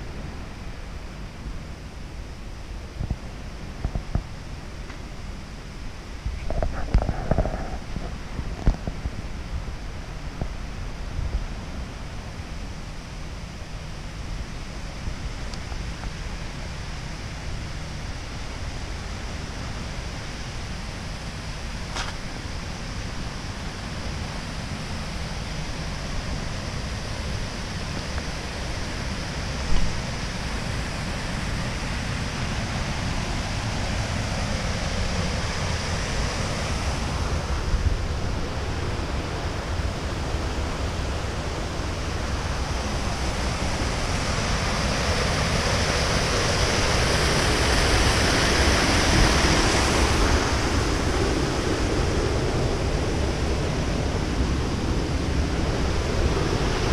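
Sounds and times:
wind rumbling on microphone: 0.0 - 56.9
sea surf rushing: 9.3 - 56.9.

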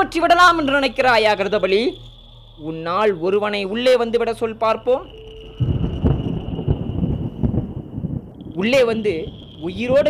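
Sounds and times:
faint steady high tone: 0.0 - 10.0.

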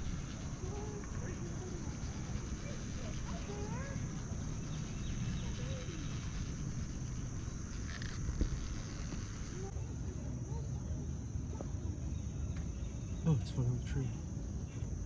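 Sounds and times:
high-pitched insect drone: 0.0 - 9.9
faint distant voices: 0.0 - 15.0.

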